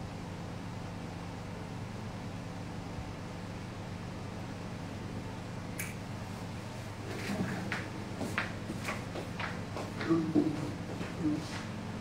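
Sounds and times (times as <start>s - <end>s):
short sharp click: 5.8s - 6.0s.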